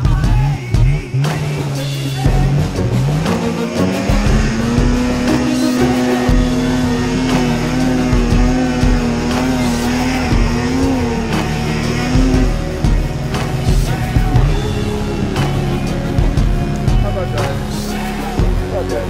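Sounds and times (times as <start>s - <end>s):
music: 0.0s - 19.0s
snowmobile engine revving: 0.0s - 19.0s.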